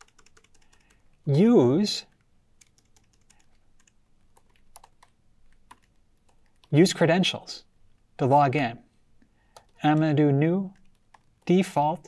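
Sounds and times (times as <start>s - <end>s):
computer keyboard typing: 0.0s - 1.2s, 2.1s - 6.8s, 9.5s - 10.1s, 10.8s - 11.5s.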